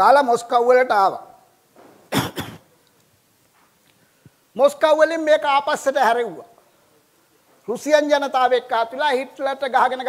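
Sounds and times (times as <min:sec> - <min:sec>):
man coughing: 0:02.1 - 0:02.7.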